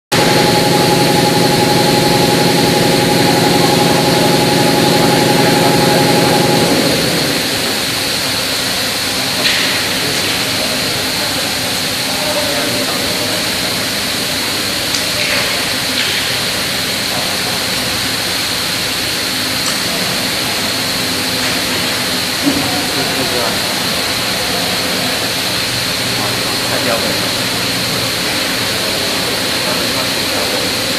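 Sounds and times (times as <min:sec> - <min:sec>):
low humming drone: 0:00.1 - 0:30.9.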